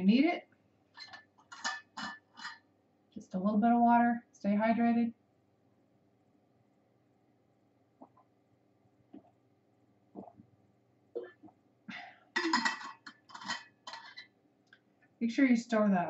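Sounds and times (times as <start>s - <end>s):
woman swallowing water: 8.0s - 8.3s, 9.1s - 9.4s, 10.1s - 10.5s, 11.2s - 11.6s.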